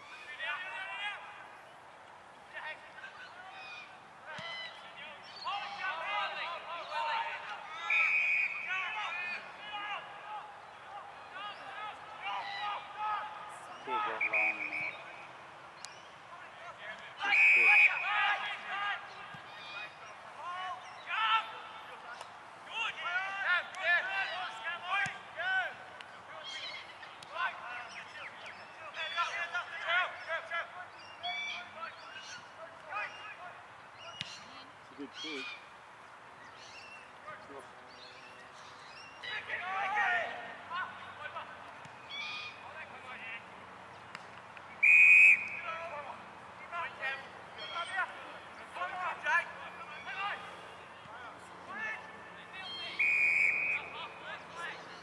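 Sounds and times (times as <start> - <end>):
distant shouts and calls: 0.0 - 55.0.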